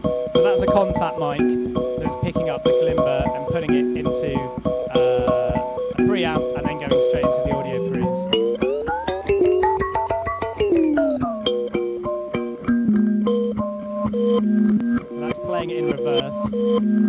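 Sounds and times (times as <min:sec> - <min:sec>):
kalimba notes gliding in pitch: 0:00.0 - 0:17.0
stuttering loop of plucked tones: 0:00.0 - 0:17.0.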